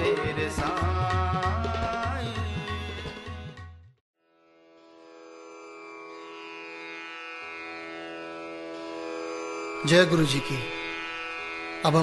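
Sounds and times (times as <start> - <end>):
instrumental drone: 5.0 - 12.0.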